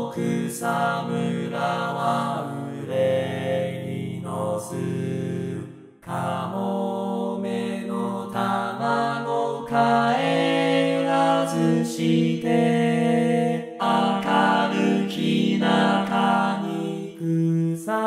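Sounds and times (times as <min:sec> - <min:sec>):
synthesized male chorus singing: 0:00.0 - 0:18.0.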